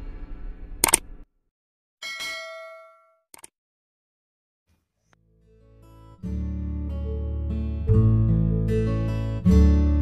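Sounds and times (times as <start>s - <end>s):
quick clicks: 0.8s - 1.1s
sharp click: 0.8s - 1.1s
bell-like notification ding: 2.0s - 3.2s.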